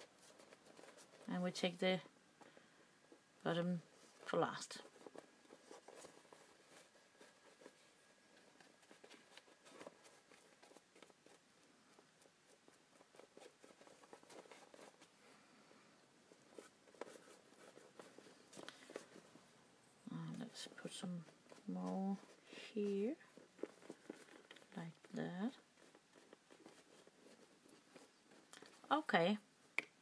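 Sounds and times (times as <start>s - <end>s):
hands handling paper: 3.9s - 15.6s, 16.2s - 19.5s, 20.3s - 29.0s.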